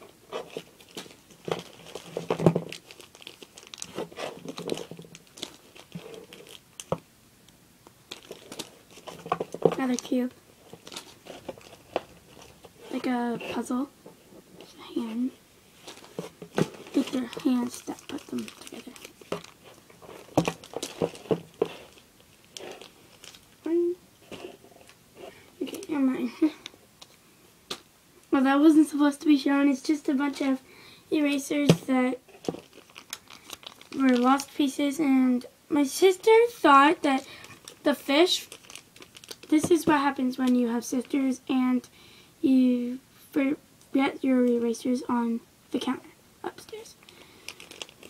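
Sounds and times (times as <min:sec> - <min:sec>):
plastic bag crinkling: 0:00.3 - 0:07.0, 0:08.1 - 0:13.8, 0:15.8 - 0:25.0, 0:31.6 - 0:34.7, 0:36.1 - 0:41.1, 0:46.9 - 0:48.0
soft rustling: 0:08.1 - 0:27.2.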